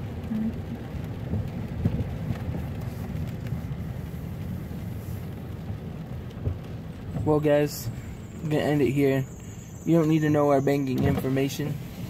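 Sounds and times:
car engine and tyres rumble: 0.0 - 12.0.

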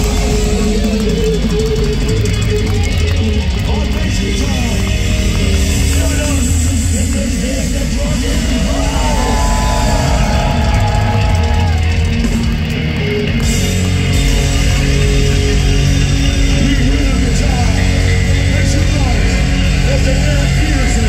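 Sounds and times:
metal band playing live: 0.0 - 21.0.

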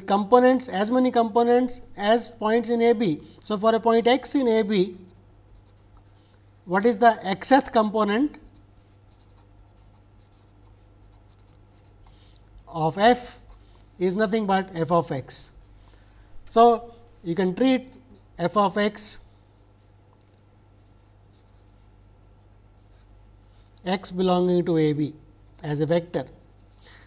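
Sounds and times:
low steady hum: 0.0 - 27.0
pen scratching on paper: 5.0 - 6.2, 8.4 - 12.3.

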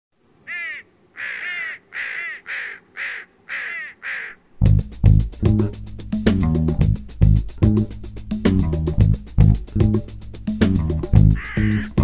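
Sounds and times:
crow cawing: 0.4 - 4.4, 11.3 - 12.0
music with bass and guitar: 4.6 - 12.0.

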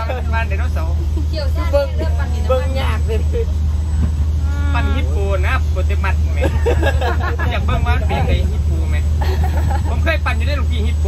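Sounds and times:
people talking: 0.0 - 11.0
steady low hum: 0.0 - 11.0.

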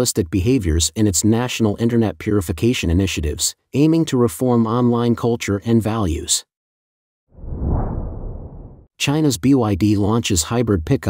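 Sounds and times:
whoosh sound effect: 7.4 - 8.9.

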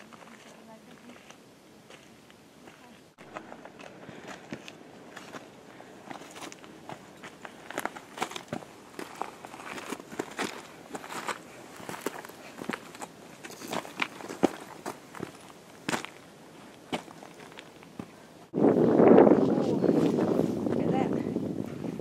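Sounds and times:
footsteps crunching on gravel: 0.0 - 18.2.

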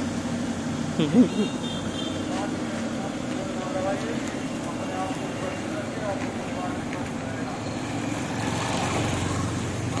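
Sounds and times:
traffic rumble: 0.0 - 10.0
car passing: 0.8 - 10.0
motorcycle passing: 7.4 - 10.0.

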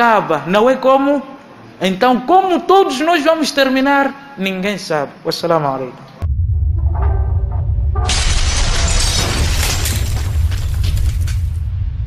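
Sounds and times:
deep steady bass: 6.2 - 8.4
sound-design music: 6.2 - 9.3
loud shattering crash: 6.8 - 12.0.

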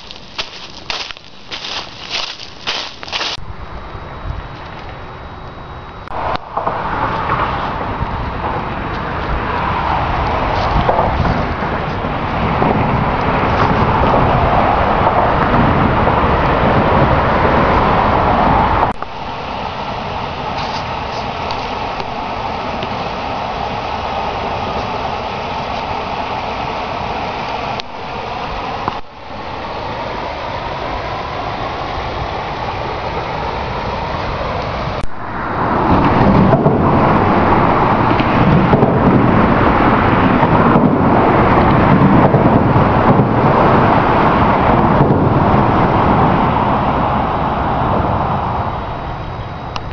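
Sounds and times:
road traffic rushing: 0.0 - 49.9
vehicles passing: 0.0 - 49.9.

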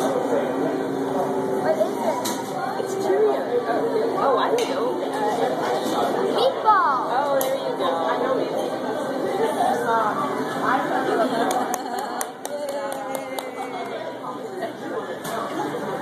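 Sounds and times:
restaurant crowd chatter: 0.0 - 16.0.

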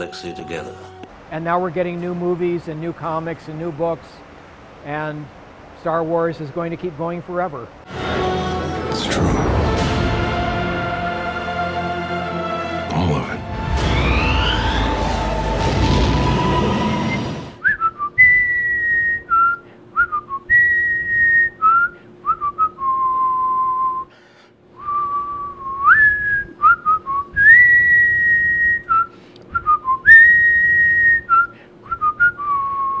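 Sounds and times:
faint steady hum: 0.0 - 13.2, 13.8 - 33.0
person whistling a slow melody: 16.5 - 24.1, 24.8 - 33.0.

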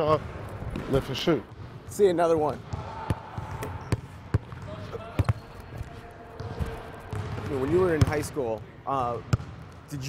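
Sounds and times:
basketball bouncing on wooden floor: 6.4 - 8.1.

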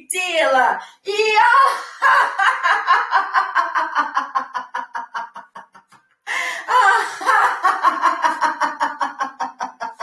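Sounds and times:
woman laughing hard: 1.6 - 10.0.

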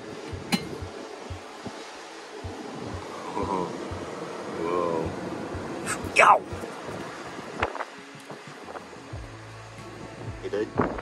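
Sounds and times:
low irregular thumps: 2.4 - 3.1.

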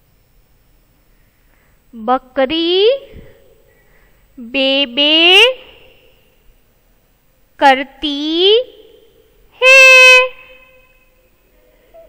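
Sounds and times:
woman holding a vowel: 9.6 - 11.0.

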